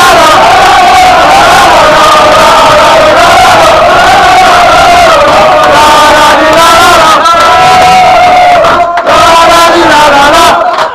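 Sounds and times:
men chanting and shouting: 0.0s - 10.9s.

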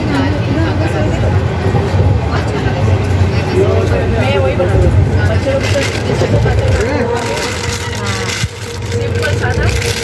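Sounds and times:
people talking: 0.0s - 10.0s
trains rumbling through station: 0.0s - 10.0s.

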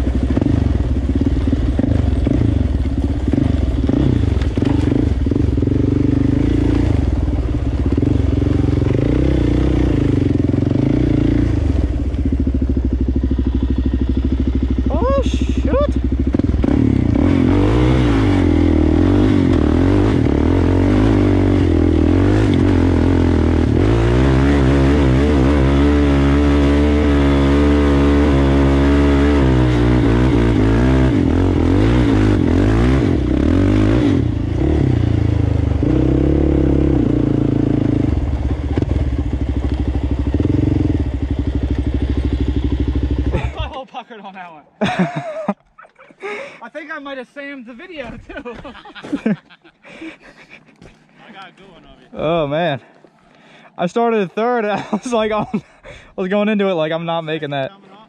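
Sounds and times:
atv engine revving: 0.0s - 43.8s, 53.9s - 57.7s.

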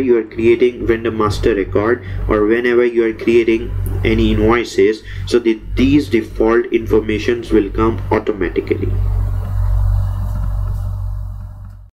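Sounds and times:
low electrical hum: 0.0s - 11.9s
microphone hiss: 0.0s - 11.9s.

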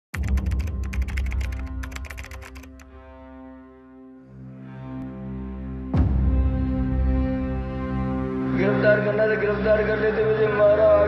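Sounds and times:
fast keyboard typing clicks: 0.2s - 2.8s.

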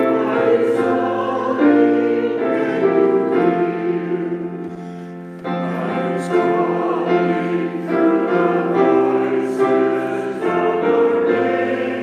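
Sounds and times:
slow church choir singing: 0.0s - 12.0s.

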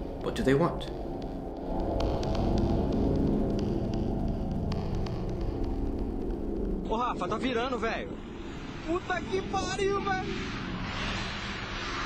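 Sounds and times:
low droning hum: 0.0s - 12.0s.

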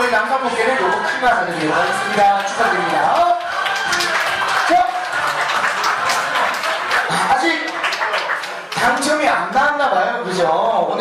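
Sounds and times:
crowd applauding: 0.0s - 9.8s.

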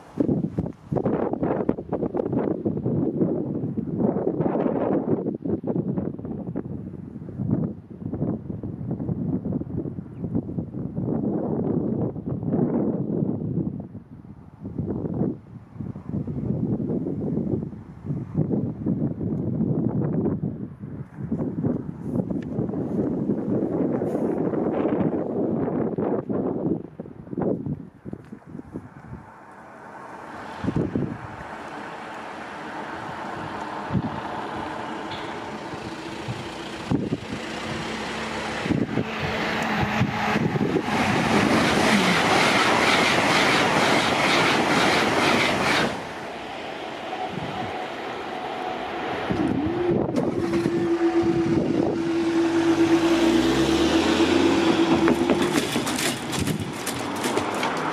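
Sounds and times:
wind gust on microphone: 0.0s - 57.9s
train rumbling: 28.7s - 57.9s
low sound falling in pitch: 46.2s - 55.7s.

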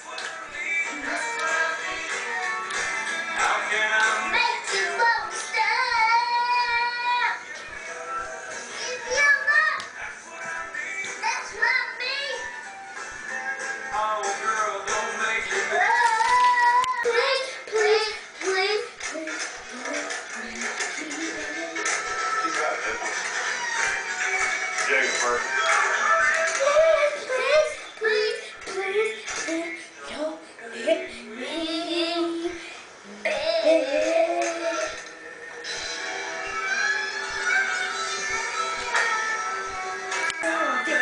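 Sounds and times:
recorded music: 0.0s - 41.0s
song with high singing voice: 0.0s - 41.0s
high-pitched voice singing: 15.7s - 22.0s, 26.1s - 35.1s.

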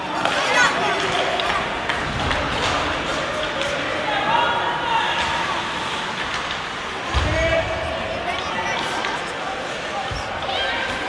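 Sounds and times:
hockey game hum: 0.0s - 11.0s.

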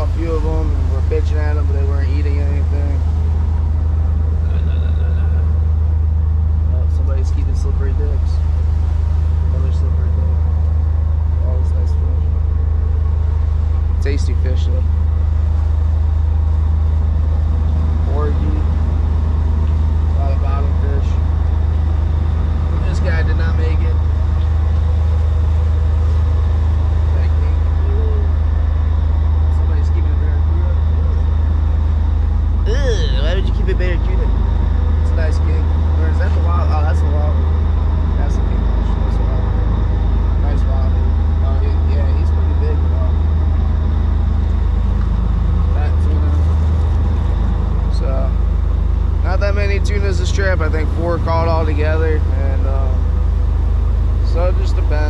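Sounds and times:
faint voices: 0.0s - 3.0s, 4.4s - 5.5s, 6.7s - 8.4s, 9.5s - 10.4s, 11.4s - 12.3s, 14.0s - 14.9s, 18.1s - 18.7s, 20.2s - 21.2s, 22.6s - 24.0s, 27.2s - 28.3s, 29.5s - 31.3s, 32.7s - 34.3s, 35.1s - 37.4s, 38.2s - 39.8s, 40.4s - 43.2s, 47.8s - 48.4s, 49.2s - 53.0s, 54.2s - 55.0s
boat engines droning: 0.0s - 55.0s.

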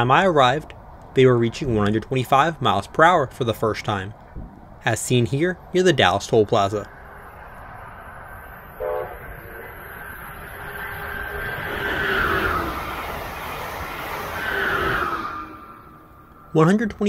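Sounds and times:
train rushing past: 5.3s - 17.0s
train horn toot: 8.8s - 9.8s.

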